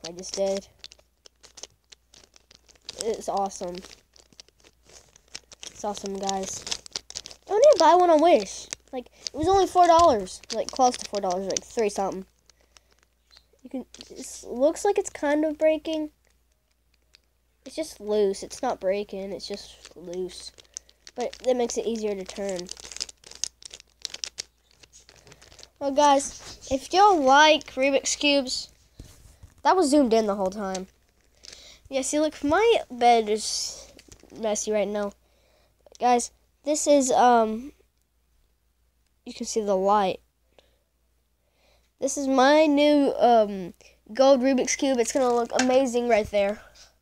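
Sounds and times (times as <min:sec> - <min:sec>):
puzzle cube clicking and scraping: 0:00.0 - 0:16.1, 0:19.3 - 0:32.8.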